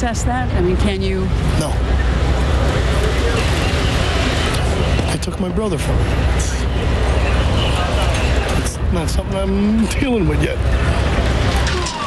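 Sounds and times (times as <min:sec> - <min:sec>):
vehicle engine rumble: 0:00.0 - 0:12.0
faint voices: 0:01.0 - 0:12.0.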